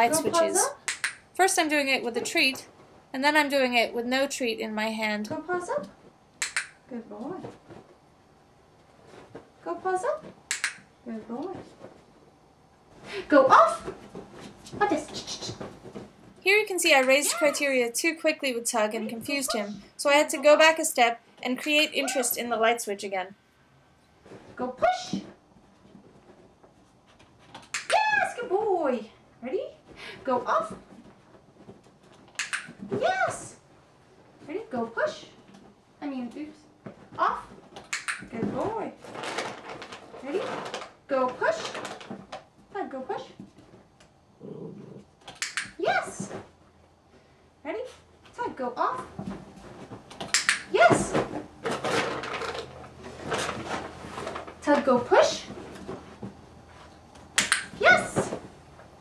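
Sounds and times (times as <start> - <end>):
sharp clicks: 0.8 - 1.2, 6.4 - 6.8, 10.5 - 10.8, 32.4 - 32.8, 37.9 - 38.2, 45.3 - 45.8.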